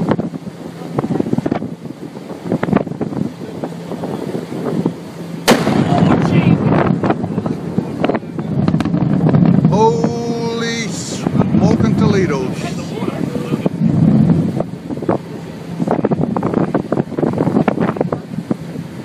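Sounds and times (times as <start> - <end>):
wind on microphone: 0.0 - 19.0
volcanic eruption shock wave bang: 1.0 - 18.8.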